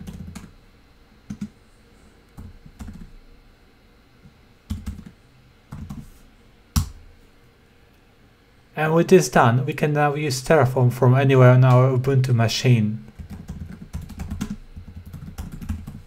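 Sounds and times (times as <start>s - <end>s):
computer keyboard typing: 0.0s - 0.5s, 1.3s - 1.5s, 2.4s - 3.1s, 4.7s - 6.0s, 13.1s - 16.0s.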